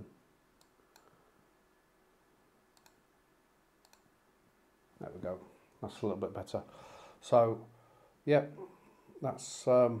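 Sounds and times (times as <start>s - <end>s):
computer mouse clicks: 0.6s - 1.2s, 2.7s - 3.0s, 3.8s - 4.1s.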